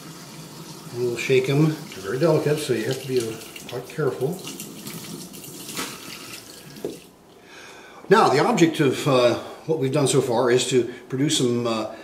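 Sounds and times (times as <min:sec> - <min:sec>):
faucet water splashing: 0:00.0 - 0:07.2.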